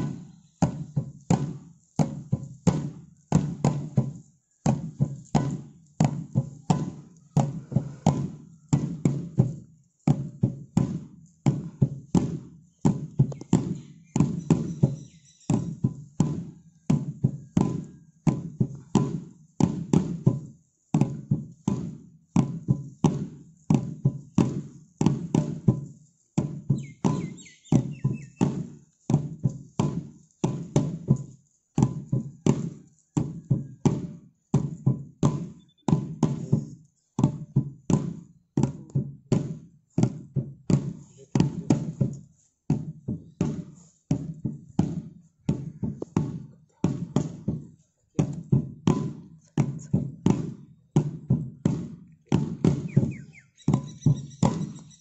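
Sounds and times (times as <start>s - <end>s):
drum beaten in steady rhythm: 23.8s - 38.8s, 39.5s - 42.2s, 45.5s - 54.9s.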